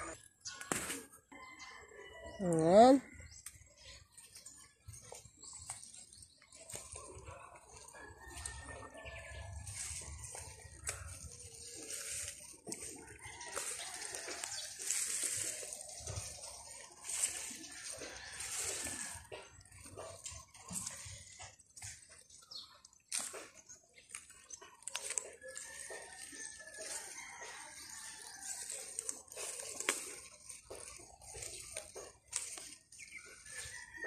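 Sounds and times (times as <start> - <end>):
spinach leaves rustling: 4.3 - 34.0.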